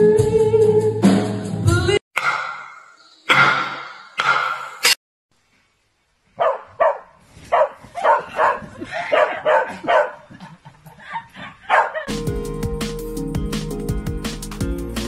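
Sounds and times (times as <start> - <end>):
music: 0.0 - 2.0, 12.1 - 15.0
dog barking: 6.4 - 10.3, 11.4 - 12.1.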